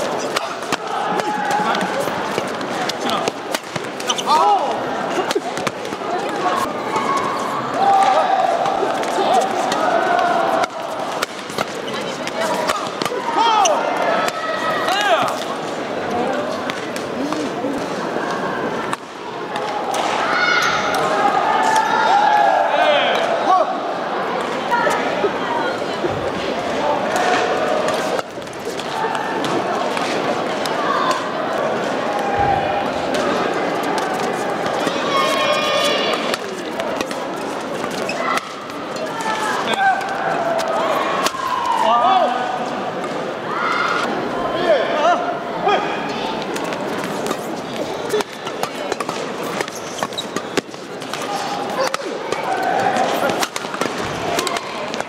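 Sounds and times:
voices echoing in hall: 0.0s - 55.0s
rackets hitting shuttlecock: 0.2s - 4.4s, 10.5s - 13.2s, 46.4s - 55.0s
shoes squeaking on floor: 3.8s - 4.5s, 37.4s - 38.6s, 48.1s - 51.5s.

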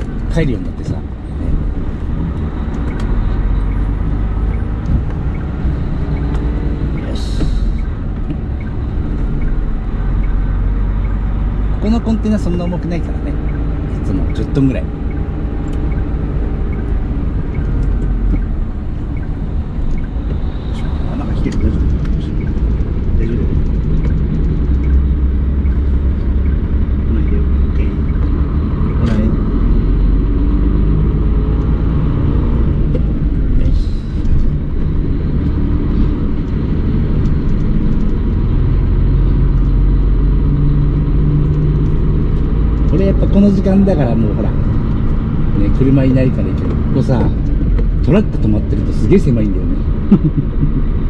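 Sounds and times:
truck diesel engine rumble: 0.0s - 51.0s.

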